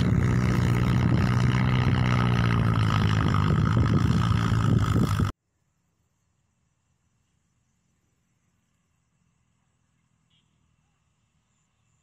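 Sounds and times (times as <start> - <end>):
engine running steadily: 0.0 - 5.3.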